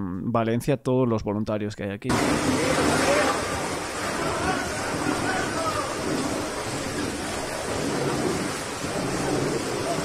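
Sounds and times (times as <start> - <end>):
dense steady din: 2.1 - 10.0.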